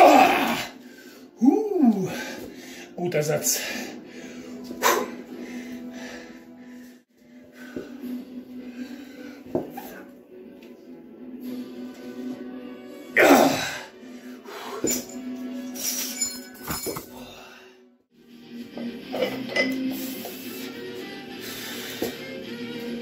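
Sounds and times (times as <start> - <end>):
person crying out in strain: 0.0 - 0.8, 13.2 - 13.8
background music: 0.0 - 23.0.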